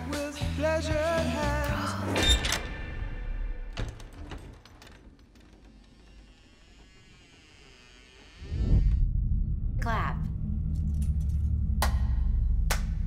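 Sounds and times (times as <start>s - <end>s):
eerie wavering drone: 6.2s - 13.0s
loud low rumble: 8.4s - 13.0s.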